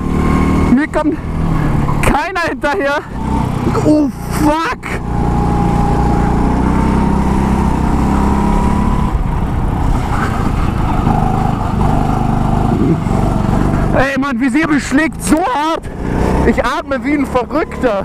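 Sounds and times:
go-kart engine running hard: 0:00.0 - 0:18.0.

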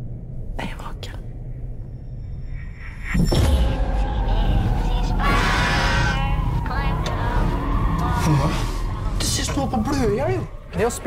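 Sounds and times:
low steady drone: 0:00.0 - 0:11.0.

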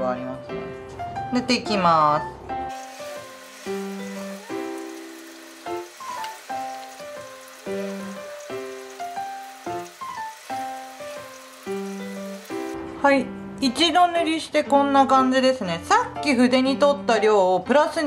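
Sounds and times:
soft instrumental music: 0:00.0 - 0:18.0.

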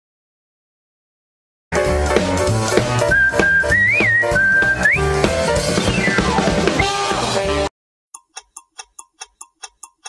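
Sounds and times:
band playing: 0:01.7 - 0:07.7
high whistle melody: 0:03.0 - 0:07.1.

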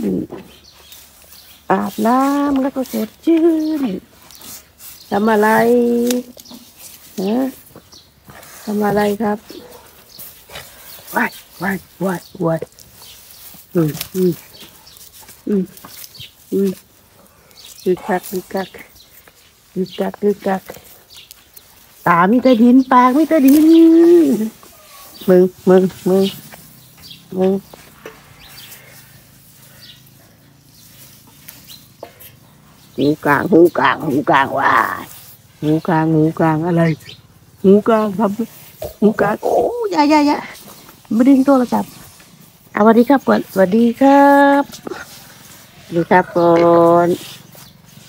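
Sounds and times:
person speaking: 0:01.6 - 0:04.1, 0:05.0 - 0:07.8, 0:11.0 - 0:12.8, 0:13.6 - 0:14.6, 0:15.4 - 0:16.9, 0:22.0 - 0:26.5, 0:27.3 - 0:27.8, 0:32.9 - 0:42.0, 0:45.9 - 0:47.3.

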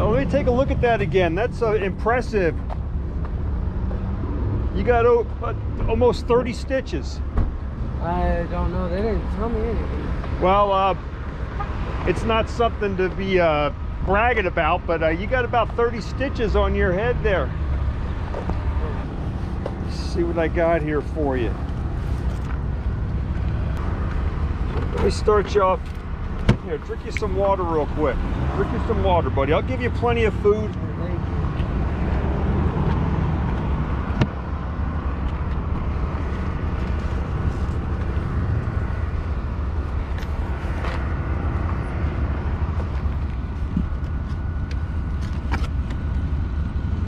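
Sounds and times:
low outdoor rumble: 0:00.0 - 0:11.2, 0:12.1 - 0:47.0
vehicle noise: 0:00.0 - 0:47.0.

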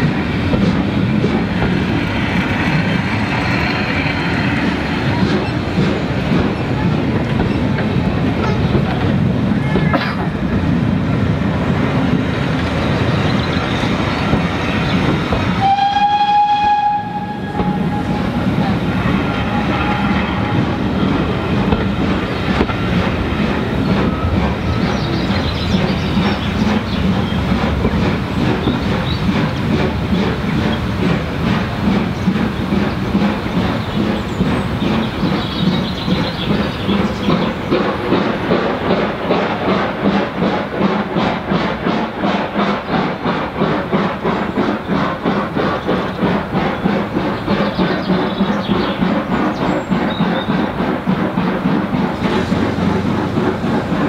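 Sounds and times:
train wheels clattering on rails: 0:00.0 - 0:54.0.

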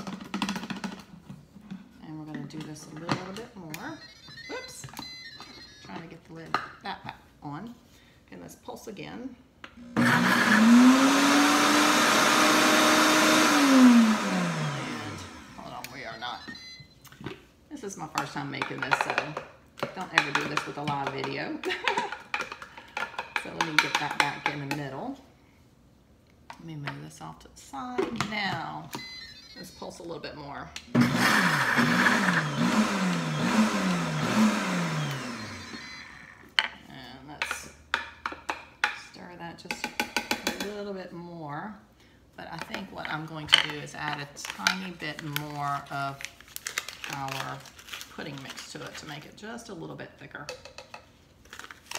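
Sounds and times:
blender motor running: 0:10.0 - 0:15.6, 0:30.9 - 0:36.4.

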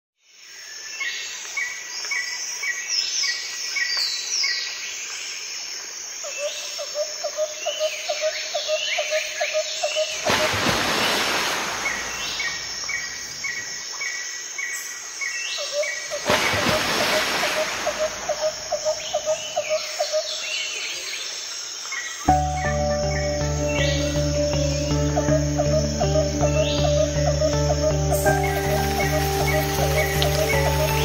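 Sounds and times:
birds chirping and whistling: 0:22.3 - 0:31.0.

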